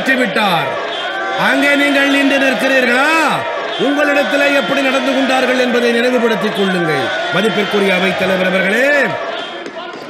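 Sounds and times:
man speaking: 0.0 - 0.8, 1.4 - 9.2.

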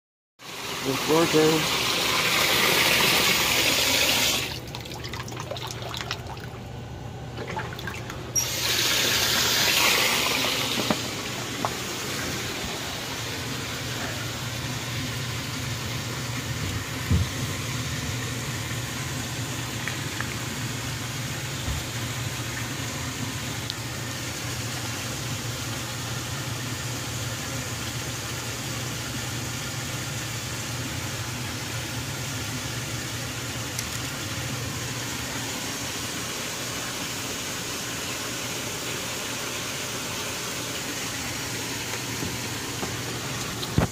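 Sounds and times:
even hiss: 8.4 - 14.5.

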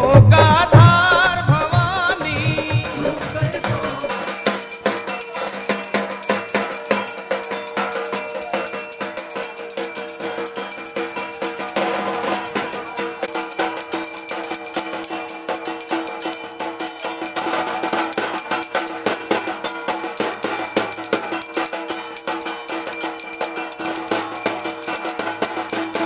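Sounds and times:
shaken percussion jingling: 2.0 - 26.0
bells ringing: 2.2 - 26.0.

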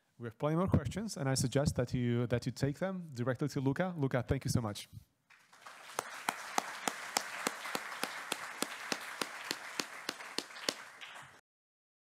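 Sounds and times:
audience applauding: 5.3 - 11.4
sharp loud claps: 5.3 - 11.4.

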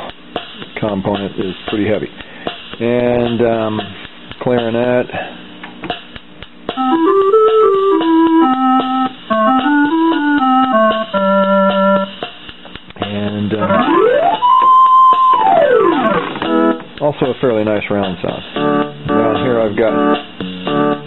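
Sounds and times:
keyboard clarinet melody: 6.8 - 12.2, 13.6 - 16.8.

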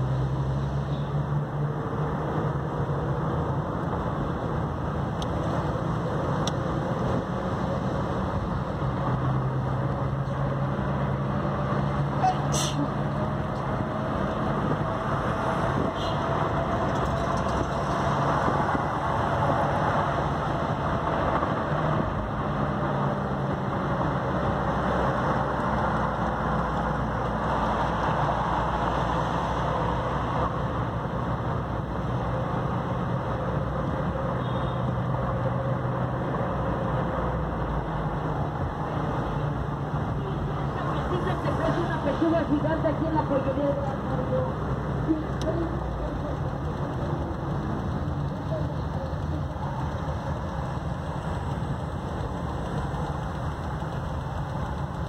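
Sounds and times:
car engine hum: 0.0 - 55.0
tyre and road noise: 0.0 - 55.0.

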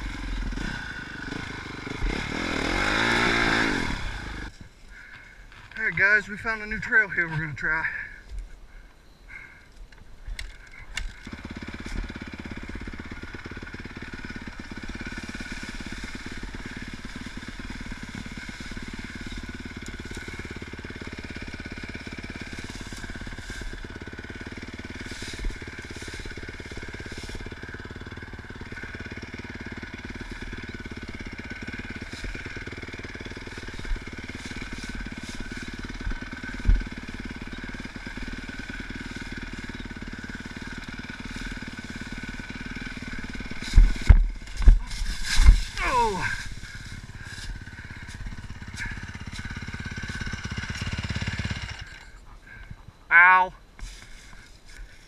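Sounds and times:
dirt bike engine running: 0.0 - 55.0
motorbike crashing down: 11.3 - 52.2.

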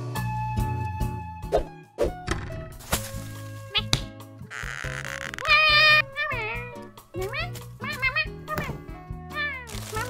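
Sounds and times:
cartoon background music: 0.0 - 10.0
character's meow-like squeaks and cries: 3.7 - 10.0.

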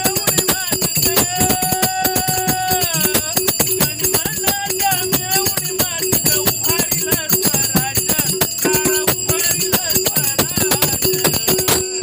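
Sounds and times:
hand drum beat: 0.0 - 12.0
man singing devotional song: 0.0 - 12.0
small hand cymbals ringing: 0.0 - 12.0.

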